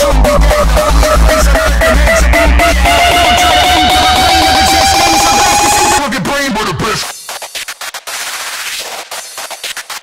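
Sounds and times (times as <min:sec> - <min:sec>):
uptempo hardcore music: 0:00.0 - 0:10.0.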